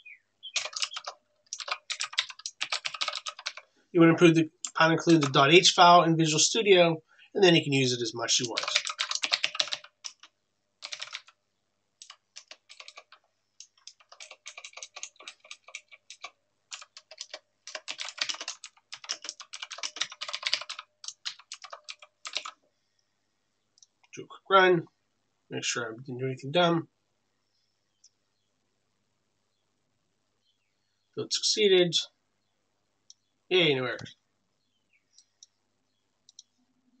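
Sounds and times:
faint computer clicks: 0.5 - 3.6.

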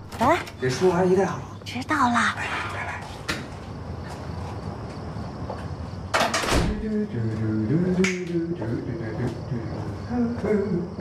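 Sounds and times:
finger snap: 8.0 - 8.4.

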